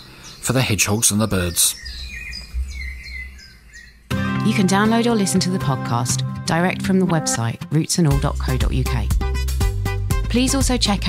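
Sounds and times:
birds chirping and calling: 0.0 - 6.0
low rumble: 1.9 - 4.0.

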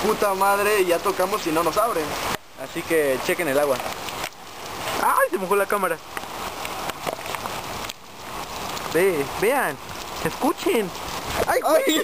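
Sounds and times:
heavy rain hissing: 0.0 - 12.0
nearby raindrops tapping: 0.0 - 12.0.

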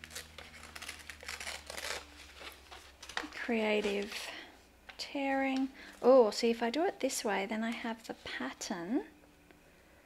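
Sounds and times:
paper tearing: 0.0 - 2.6.

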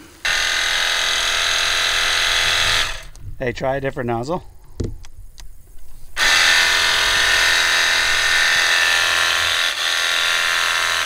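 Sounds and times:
electric pump whine: 0.0 - 11.0.

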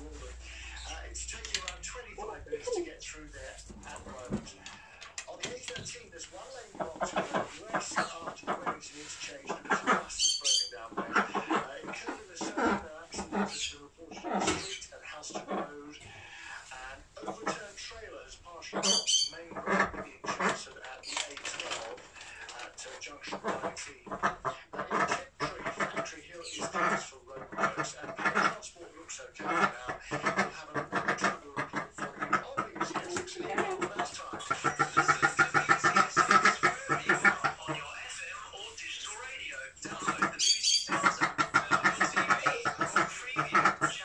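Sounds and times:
duck quacking: 6.7 - 16.5, 18.7 - 20.8, 23.1 - 39.2, 39.8 - 44.0.

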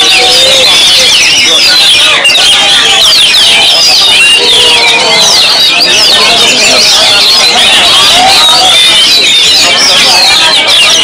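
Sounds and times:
birds whistling and trilling: 0.0 - 11.0.

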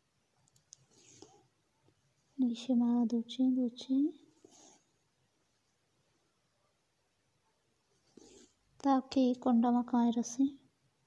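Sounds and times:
faint clicks: 0.4 - 2.0.

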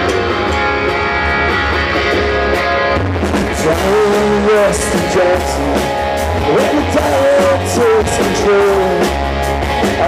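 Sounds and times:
drum kit with cymbals: 0.0 - 10.0
electric bass: 0.0 - 10.0
electric guitar: 0.0 - 10.0.

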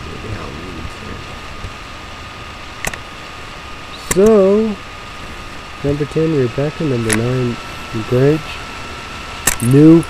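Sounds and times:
background hum and hiss: 0.0 - 10.0
high whine: 0.0 - 10.0
low murmur: 0.0 - 10.0
sharp click: 2.8 - 3.0, 4.0 - 4.4, 7.0 - 7.3, 9.4 - 9.8.

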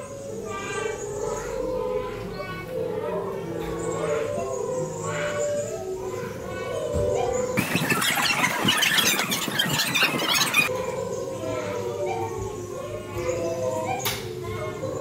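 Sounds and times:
wavering pitched sounds: 7.4 - 10.9.

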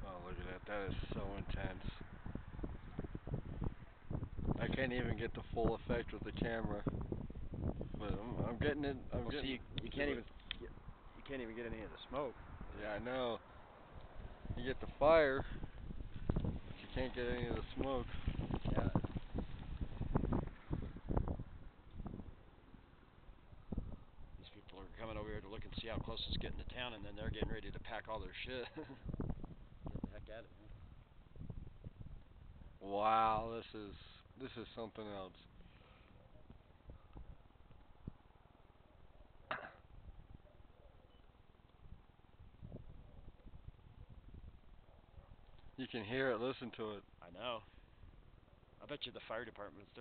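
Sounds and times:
wind buffeting microphone: 0.0 - 33.6, 36.2 - 38.4, 39.9 - 40.6, 41.8 - 45.8
faint low fire rumble: 0.0 - 50.0.

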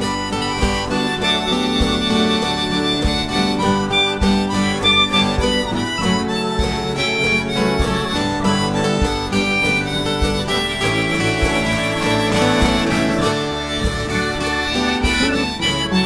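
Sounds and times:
harmonica melody: 0.0 - 16.0
strummed acoustic guitar: 0.0 - 16.0.

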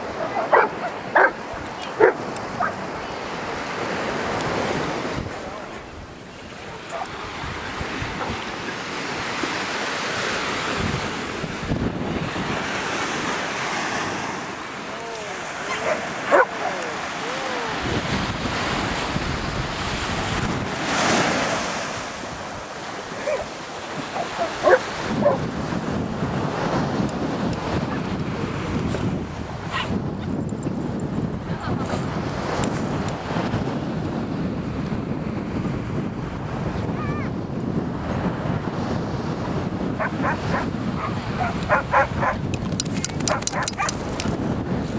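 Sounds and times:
ocean surf washing: 0.0 - 30.2, 31.4 - 44.9
wind on microphone: 0.0 - 44.9
dog barking: 0.1 - 2.8, 15.6 - 17.0, 23.2 - 23.5, 24.1 - 25.4, 40.0 - 42.4, 43.2 - 44.0.

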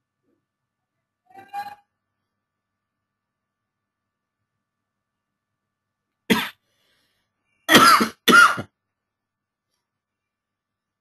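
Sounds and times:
person coughing: 6.3 - 6.6, 7.7 - 8.8.

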